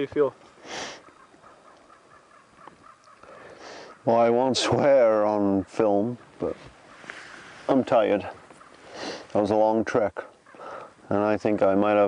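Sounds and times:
faint bird calls: 0.0s - 12.0s
short breathy hiss: 0.6s - 1.0s, 3.5s - 4.0s, 8.8s - 9.3s.

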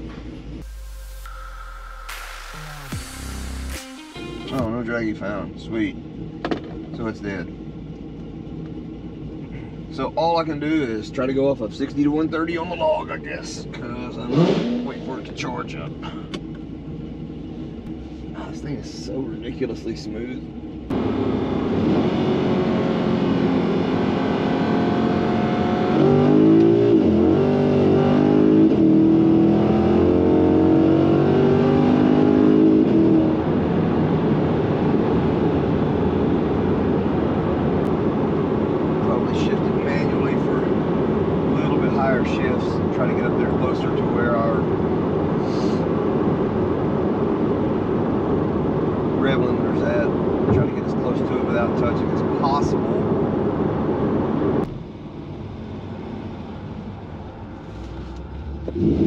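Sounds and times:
car engine accelerating from cabin: 13.7s - 55.0s, 57.6s - 59.0s.

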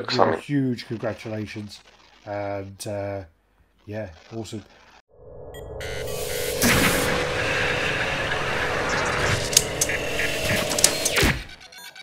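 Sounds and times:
glitchy crackles: 0.5s - 5.0s, 5.8s - 12.0s
whoosh: 5.2s - 10.7s
dense steady hum: 5.5s - 11.2s
falling power-down sweep: 5.6s - 11.4s
sharp hits: 5.6s - 11.5s.

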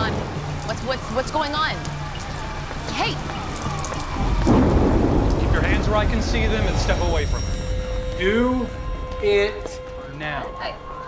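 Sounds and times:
deep rumble: 2.8s - 11.0s.

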